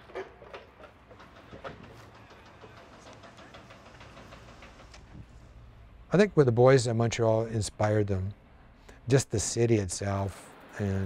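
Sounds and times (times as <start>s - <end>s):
steady low hum: 1.0s - 11.0s.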